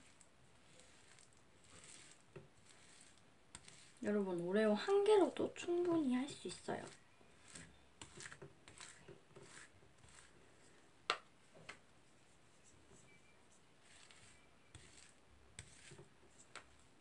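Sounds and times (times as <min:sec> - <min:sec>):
spatulas scraping ice cream: 0:00.0 - 0:10.8, 0:13.0 - 0:17.0.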